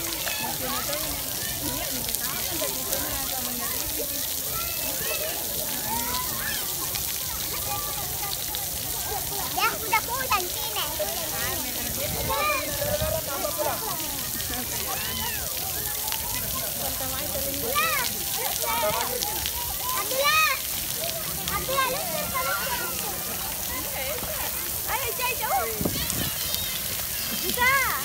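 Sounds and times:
crowd voices and high calls: 0:00.0 - 0:28.0
fountain water jets spraying: 0:00.0 - 0:28.0.

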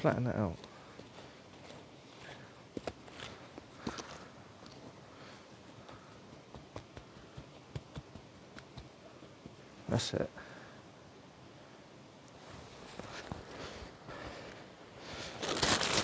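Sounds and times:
hands rustling through ash: 0:12.5 - 0:16.0.

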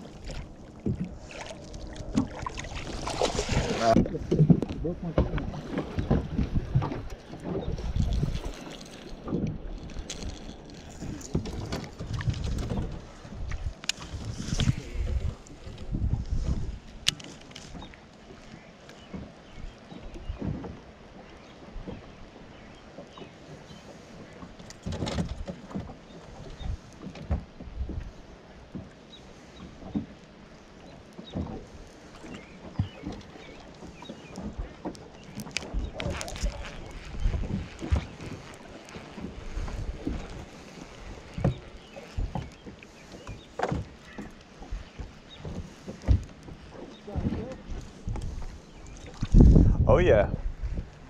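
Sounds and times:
waves slapping against boat hull: 0:00.0 - 0:51.0
wind on microphone: 0:00.8 - 0:17.2, 0:32.3 - 0:43.9, 0:47.0 - 0:51.0.

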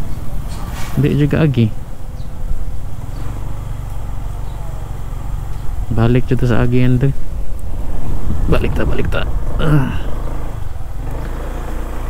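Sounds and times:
wind and road noise: 0:00.0 - 0:12.0
motorcycle engine running: 0:01.9 - 0:12.0.

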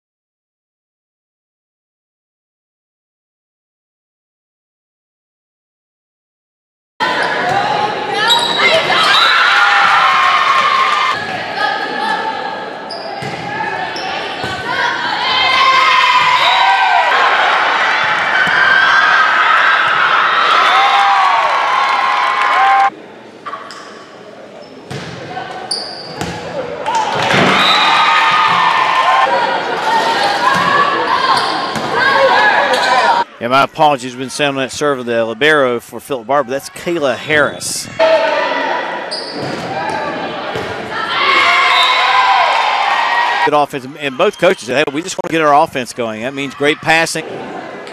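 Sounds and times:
crowd shouting and cheering: 0:07.0 - 0:24.2, 0:25.2 - 0:47.9.

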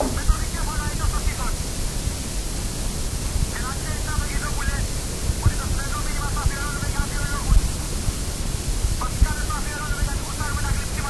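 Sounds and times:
person speaking: 0:00.0 - 0:01.6, 0:03.6 - 0:07.8, 0:09.0 - 0:11.0
recording hiss and rumble: 0:00.0 - 0:11.0.

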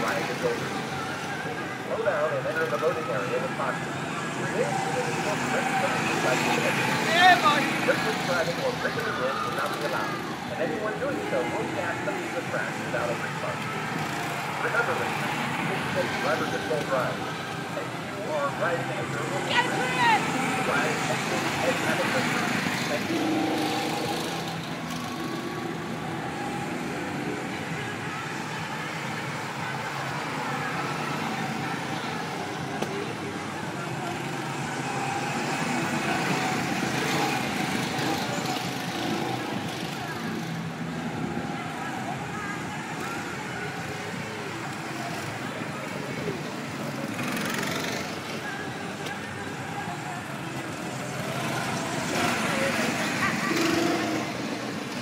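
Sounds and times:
go-kart engines buzzing: 0:00.0 - 0:55.0.

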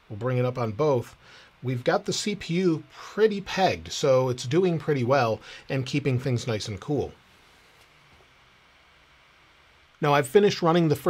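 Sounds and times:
faint laptop fan noise: 0:00.0 - 0:11.0.

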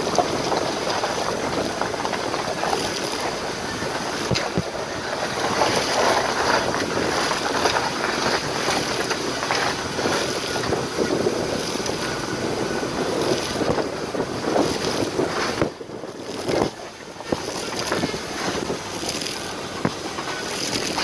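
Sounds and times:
tyres on gravel road: 0:00.0 - 0:21.0
wind buffeting microphone: 0:00.0 - 0:21.0.

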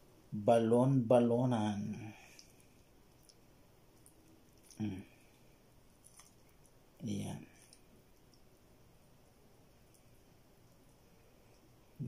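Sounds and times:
wet sounds of pulling raw innards: 0:02.2 - 0:06.8, 0:07.4 - 0:08.5.

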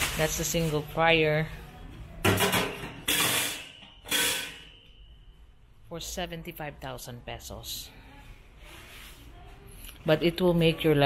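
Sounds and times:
high metallic ring: 0:03.1 - 0:05.4.

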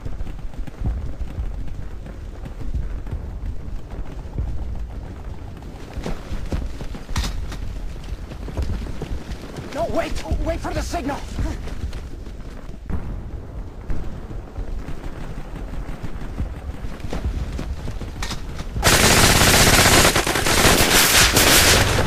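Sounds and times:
machine-gun fire: 0:18.8 - 0:22.0
scattered gunshots: 0:18.8 - 0:22.0.

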